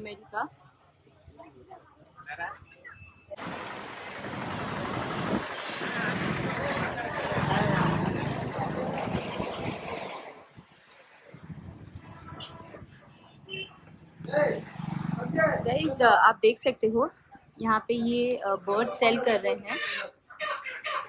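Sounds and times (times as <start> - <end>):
road traffic passing: 2.1 - 21.0
short high squeak: 6.5 - 7.3, 12.1 - 12.9
voices: 12.2 - 20.8.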